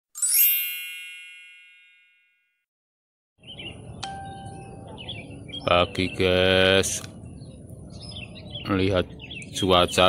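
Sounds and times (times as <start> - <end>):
bright chime ringing: 0.1 - 2.6, 4.0 - 4.9
bird chirp: 3.4 - 10.0.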